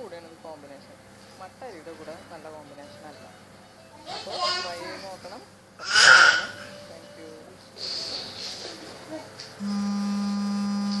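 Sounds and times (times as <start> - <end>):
steady low electronic tone: 9.6 - 11.0.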